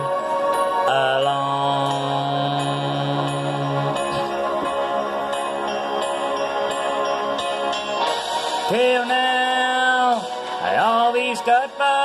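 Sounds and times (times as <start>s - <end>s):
sustained keyboard chords: 0.0s - 12.0s
man singing: 0.7s - 4.6s, 8.7s - 12.0s.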